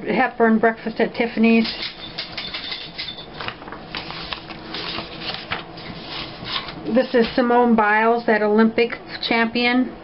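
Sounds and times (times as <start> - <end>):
stiff paper pages rustling: 3.4 - 7.5.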